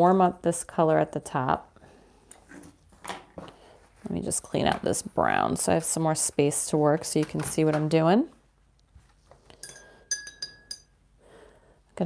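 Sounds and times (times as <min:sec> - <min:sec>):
brush clinking on glass jar: 0:09.6 - 0:11.0.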